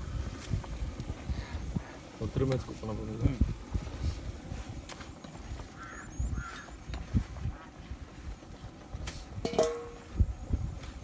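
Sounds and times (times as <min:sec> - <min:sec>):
poultry calling: 0:05.7 - 0:06.8.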